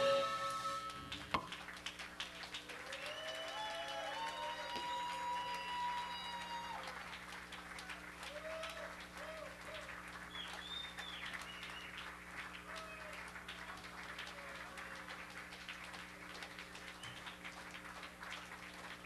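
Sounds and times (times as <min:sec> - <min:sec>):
audience applauding and cheering: 0:00.0 - 0:19.0
low electrical hum: 0:00.0 - 0:19.0
long whoops: 0:02.7 - 0:07.0, 0:07.9 - 0:09.9.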